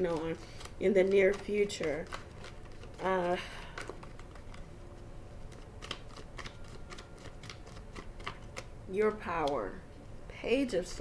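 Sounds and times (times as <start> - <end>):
cards clicking and tapping: 0.0 - 4.7, 5.5 - 8.7
low room hum: 0.0 - 11.0.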